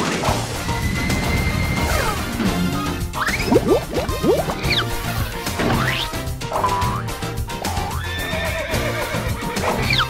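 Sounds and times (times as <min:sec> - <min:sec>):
music: 0:00.0 - 0:10.0
horse whinny: 0:07.9 - 0:10.0.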